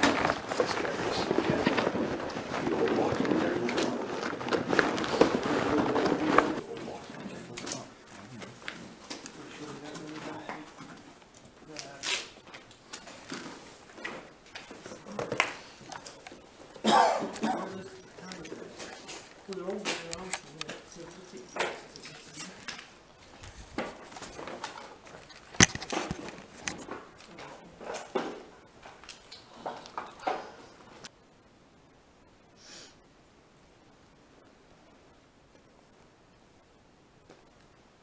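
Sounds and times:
muffled voices: 0:00.0 - 0:12.4, 0:14.7 - 0:23.0
handling noise: 0:00.0 - 0:31.1
high-pitched whine: 0:00.0 - 0:38.0.

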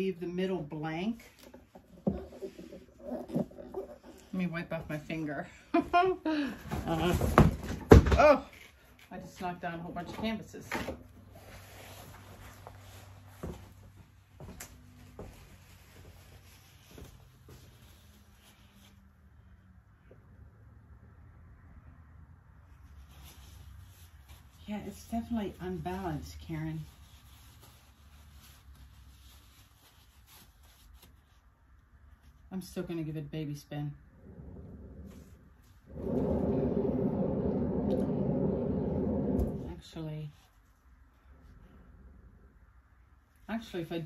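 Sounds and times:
canvas spinner rumble: 0:34.0 - 0:39.9.

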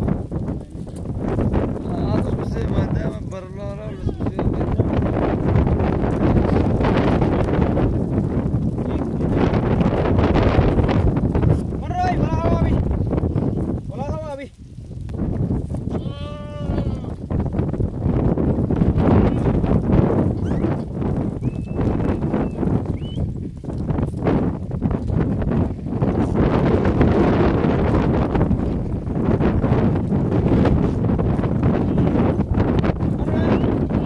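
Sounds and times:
wind on microphone: 0:00.0 - 0:34.0
goat bleating: 0:15.9 - 0:17.2.

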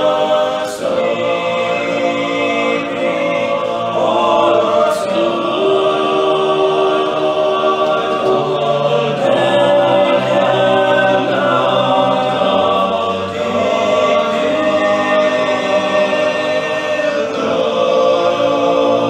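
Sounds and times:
male a cappella group singing: 0:00.0 - 0:19.0.

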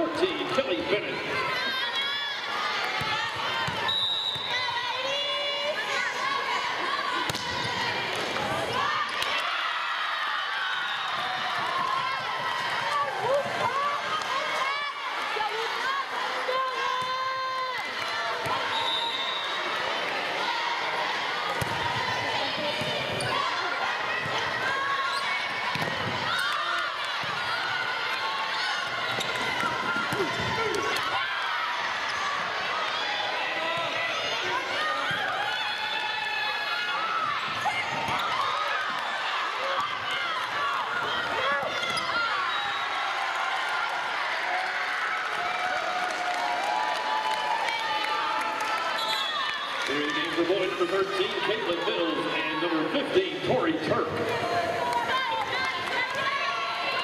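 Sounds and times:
crowd voices: 0:00.0 - 0:57.0
volleyball hit and bouncing: 0:02.8 - 0:04.6, 0:07.2 - 0:09.5, 0:21.5 - 0:31.3, 0:37.4 - 0:39.0.

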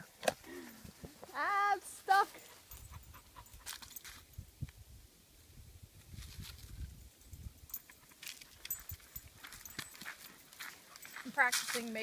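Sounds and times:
footsteps on leaves and gravel: 0:08.0 - 0:12.0.

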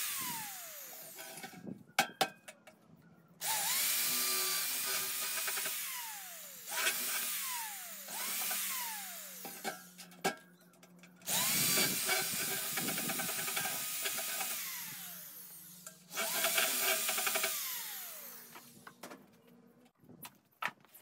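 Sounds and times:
electric drill whining: 0:00.0 - 0:01.6, 0:03.4 - 0:10.0, 0:11.2 - 0:19.0.

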